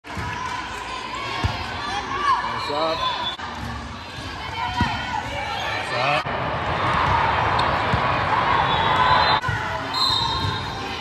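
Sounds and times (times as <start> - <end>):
hubbub of voices echoing: 0.0 - 11.0.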